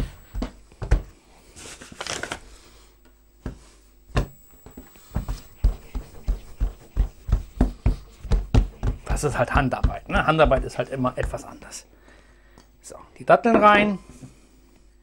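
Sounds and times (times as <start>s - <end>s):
dough thumping on wooden board: 5.2s - 11.6s.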